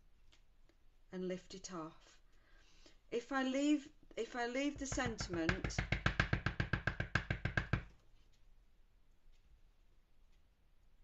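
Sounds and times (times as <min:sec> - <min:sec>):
stamp tapping on ink pad: 0:04.8 - 0:07.9.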